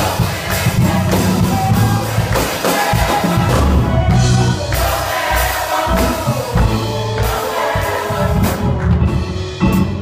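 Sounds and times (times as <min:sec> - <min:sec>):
drum kit: 0:00.0 - 0:10.0.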